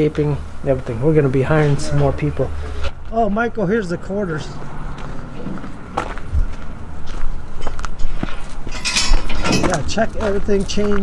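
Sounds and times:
footsteps on gravel: 0:04.6 - 0:11.0.

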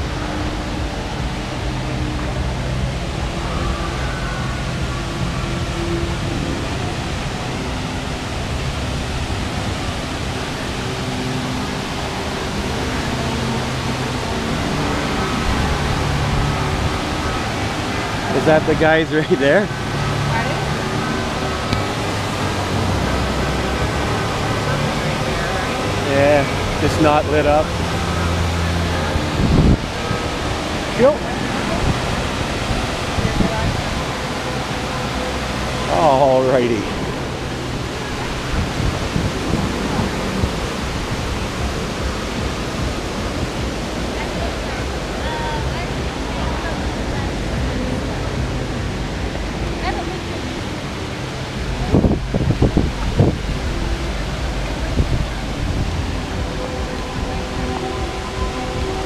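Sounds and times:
low hum: 0:00.0 - 0:59.0
waterfall rushing: 0:00.0 - 0:59.0.

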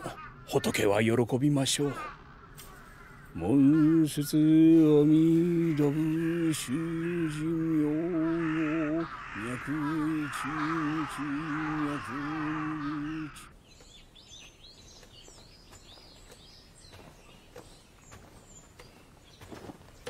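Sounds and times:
birds chirping: 0:00.0 - 0:20.0
man chanting: 0:03.4 - 0:13.5.

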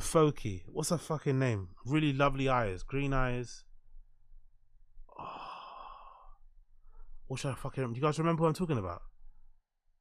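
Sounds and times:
man sighing: 0:05.1 - 0:06.4.

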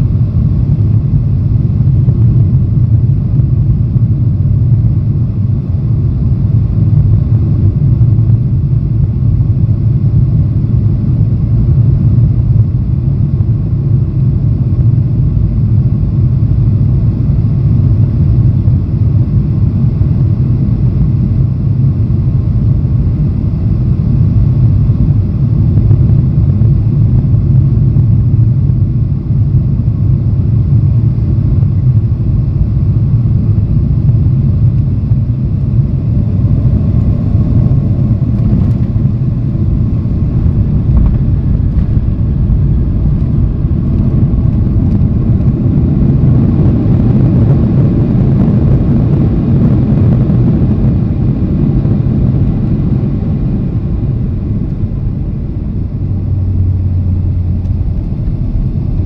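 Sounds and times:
jet engine cabin rumble: 0:00.0 - 0:59.0.

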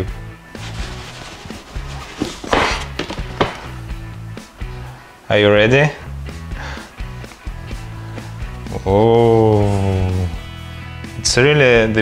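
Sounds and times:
background music with bass line: 0:00.0 - 0:12.0
cardboard box lid sliding off: 0:00.6 - 0:03.9.

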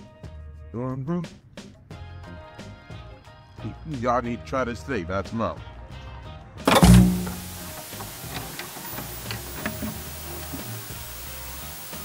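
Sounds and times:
loud bass hit: 0:06.7 - 0:07.8
static hiss: 0:06.7 - 0:12.0.

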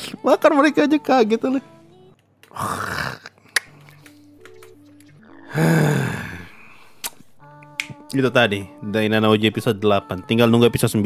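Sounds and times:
quiet music with low notes: 0:00.0 - 0:02.7, 0:03.5 - 0:11.0
breathy bursts of noise: 0:05.4 - 0:07.4.

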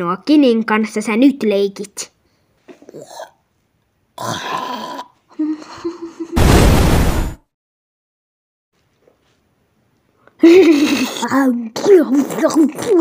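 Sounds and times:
loud deep burst: 0:06.4 - 0:07.4.

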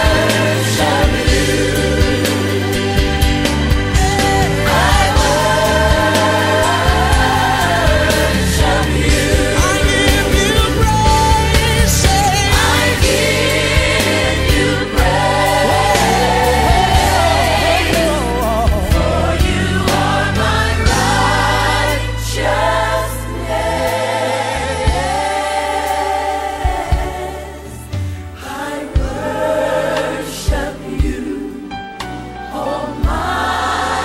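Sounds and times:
choir singing gospel song: 0:00.0 - 0:34.0
instrumental backing: 0:00.0 - 0:34.0.

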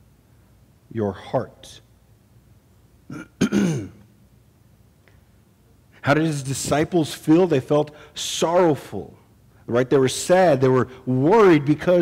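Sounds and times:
man clearing his throat: 0:03.1 - 0:04.0.

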